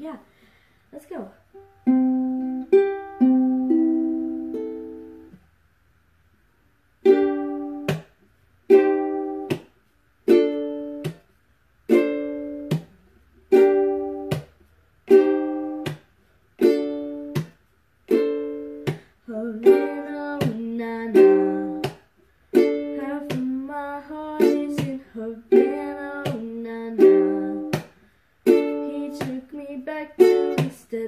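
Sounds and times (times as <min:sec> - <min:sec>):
ukulele strumming chords: 0:01.5 - 0:05.4, 0:07.0 - 0:31.0.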